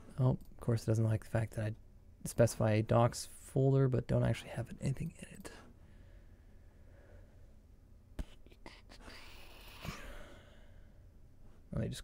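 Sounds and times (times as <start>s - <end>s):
man whispering: 4.2s - 5.7s, 8.2s - 10.0s.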